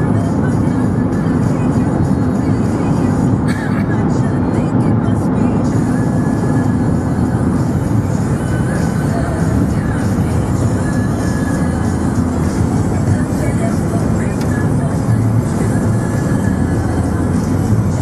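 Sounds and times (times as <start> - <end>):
pop song on car radio: 0.0 - 18.0
road and engine noise: 0.0 - 18.0.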